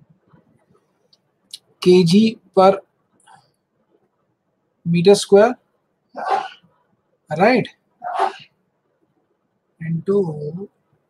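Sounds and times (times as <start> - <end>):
man speaking: 1.6 - 2.9, 4.9 - 5.6, 7.3 - 8.4, 9.8 - 10.7.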